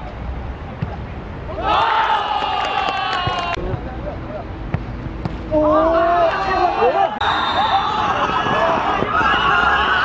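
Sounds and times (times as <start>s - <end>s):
young players shouting and cheering: 1.5s - 3.8s, 5.4s - 10.0s.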